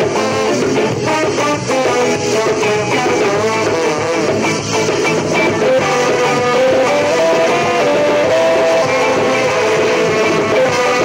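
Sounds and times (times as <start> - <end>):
guitar: 0.0 - 11.0
lead melody line: 0.0 - 11.0
ska band playing: 0.0 - 11.0.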